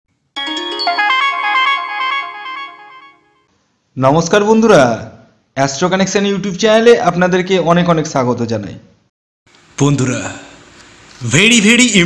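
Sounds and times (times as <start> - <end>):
electronic jingle: 0.4 - 3.4.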